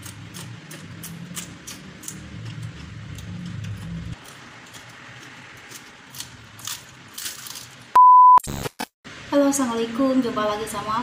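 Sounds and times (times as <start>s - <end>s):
loud single-pitch beep: 8.0s - 8.4s.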